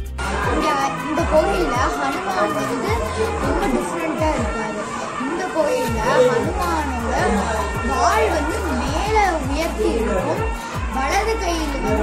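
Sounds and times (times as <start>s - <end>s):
girl talking: 0.4s - 12.0s.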